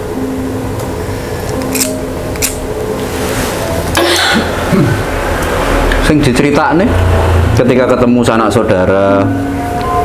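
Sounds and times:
cigarette lighter striking: 1.5 - 2.6.

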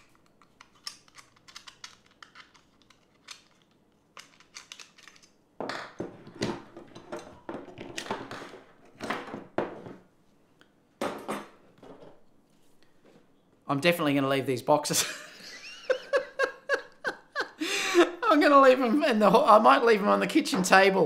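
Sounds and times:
scrapes and knocks: 5.0 - 10.1.

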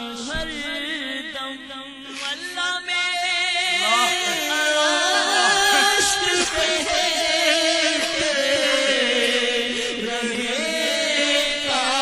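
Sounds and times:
men weeping aloud: 3.8 - 12.0.

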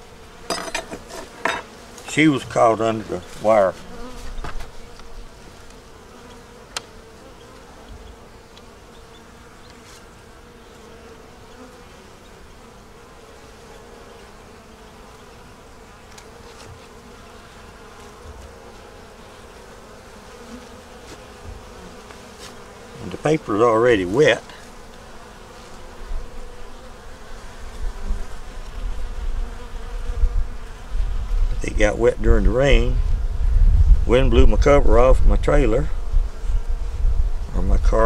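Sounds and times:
bees buzzing: 0.0 - 34.0.

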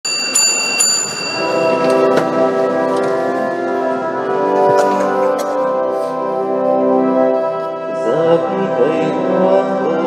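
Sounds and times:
small bell ringing: 0.0 - 2.2
organ playing sustained chord: 0.7 - 10.0.

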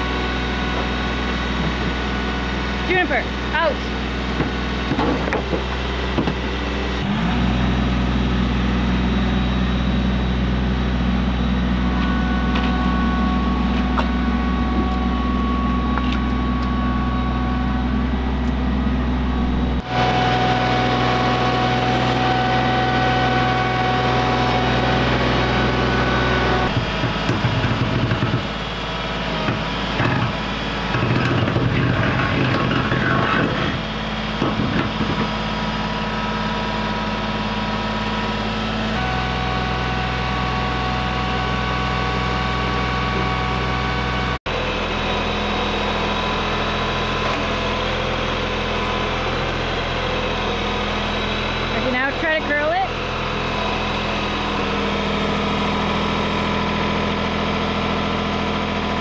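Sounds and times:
diesel tractor engine running: 0.0 - 59.0.

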